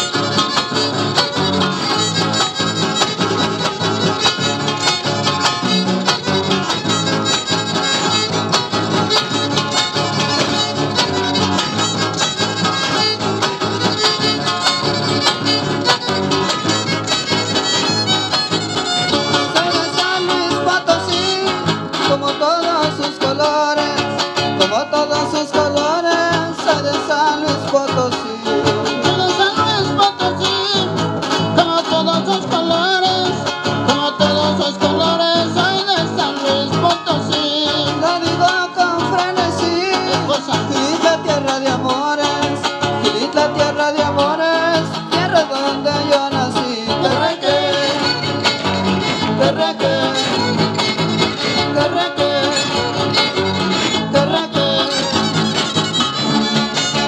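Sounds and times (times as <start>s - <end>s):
strummed guitars: 0.0s - 57.0s
violin melody: 0.3s - 19.6s, 54.8s - 57.0s.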